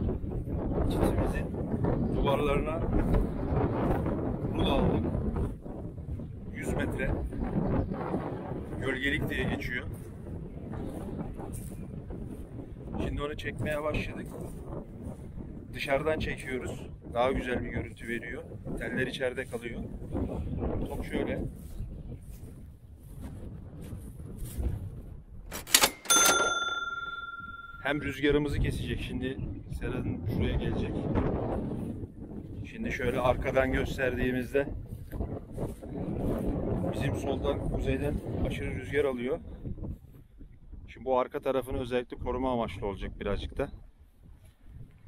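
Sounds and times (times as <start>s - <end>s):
wind buffeting microphone: 0.0s - 45.0s
bright bell ding: 25.8s - 28.2s.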